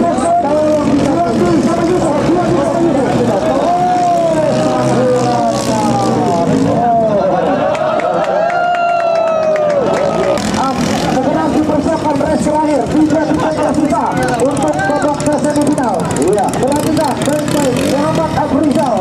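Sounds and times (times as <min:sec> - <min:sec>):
people talking: 0:00.0 - 0:08.6, 0:09.6 - 0:19.0.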